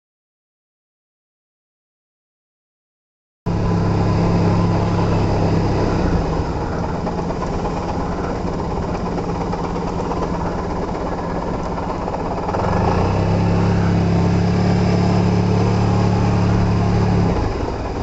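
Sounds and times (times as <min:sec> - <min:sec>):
road noise: 0:03.5 - 0:18.0
scooter engine running: 0:03.5 - 0:18.0.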